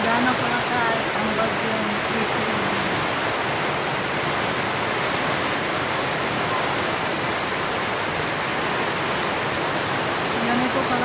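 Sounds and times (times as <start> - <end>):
heavy rain downpour: 0.0 - 11.0.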